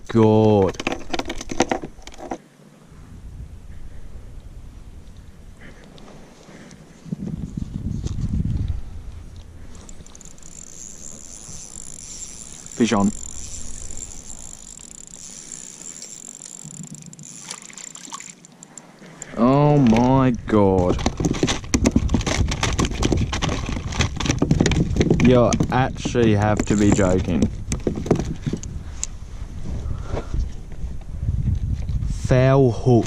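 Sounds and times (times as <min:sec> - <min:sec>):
low rumble: 0:02.9 - 0:05.9, 0:07.0 - 0:14.8.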